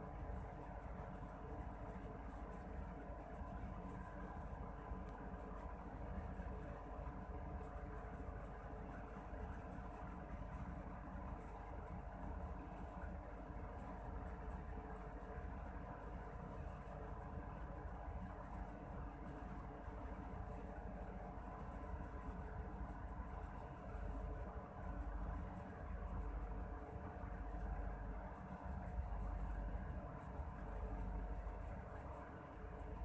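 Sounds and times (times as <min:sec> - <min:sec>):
low background hum: 0:00.0 - 0:33.0.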